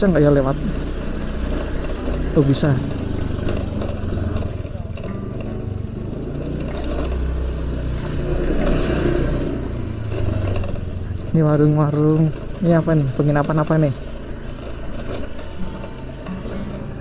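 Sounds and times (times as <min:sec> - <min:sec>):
motor scooter approaching: 0:00.0 - 0:17.0
truck engine idling: 0:00.0 - 0:17.0.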